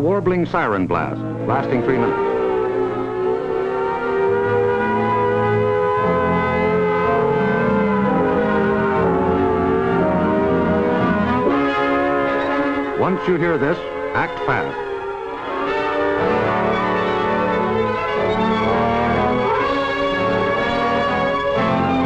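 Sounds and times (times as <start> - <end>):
orchestral music with brass chords: 0.0 - 22.0.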